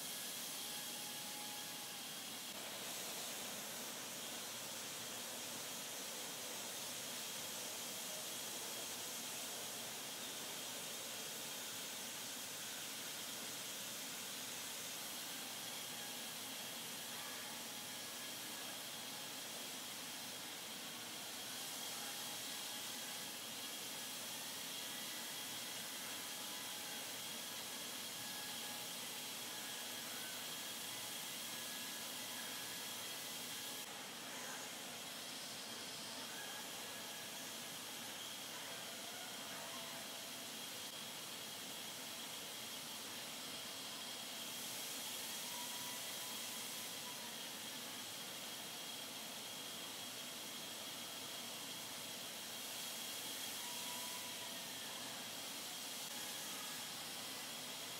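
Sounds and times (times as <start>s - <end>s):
faint high whine: 0.0s - 57.9s
paint spray hiss: 0.0s - 57.9s.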